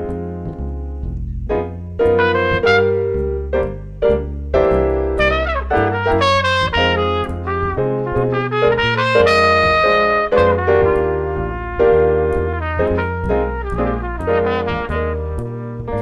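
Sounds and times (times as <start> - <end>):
bass line: 0.0 - 16.0
piano chords: 0.0 - 16.0
trumpet playing jazz melody: 2.0 - 16.0.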